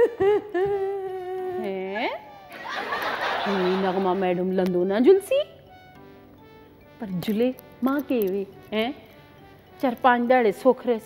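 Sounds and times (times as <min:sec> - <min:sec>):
woman humming: 0:00.0 - 0:02.6.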